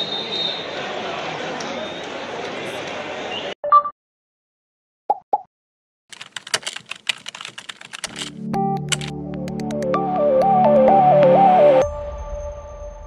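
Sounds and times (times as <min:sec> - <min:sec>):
keyboard typing clicks: 0:06.1 - 0:09.8
music jingle: 0:08.4 - 0:13.0.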